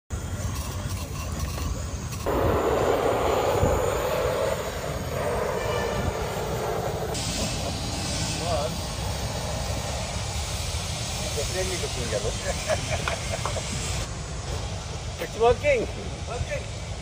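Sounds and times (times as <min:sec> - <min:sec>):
spray paint can hissing: 0:00.2 - 0:14.1
wind rumble on microphone: 0:01.4 - 0:07.2.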